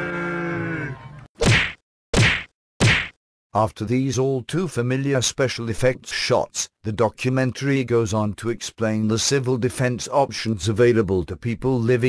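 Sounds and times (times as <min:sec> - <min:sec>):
punch whacks: 0:01.4 - 0:03.2.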